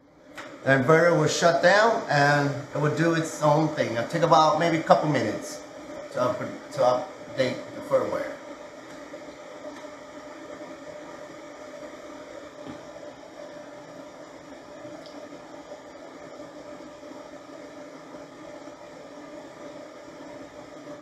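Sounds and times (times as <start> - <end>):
steady whir with hum and hiss: 0.0 - 21.0.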